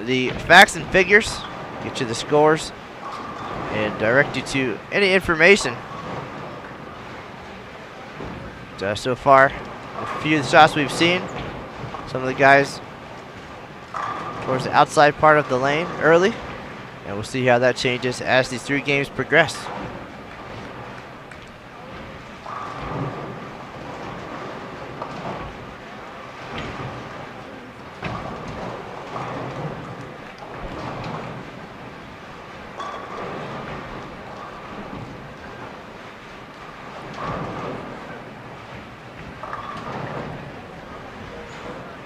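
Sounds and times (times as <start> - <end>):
bowling pins crashing: 0.0 - 17.2, 18.6 - 42.0
bowling balls rolling: 0.0 - 42.0.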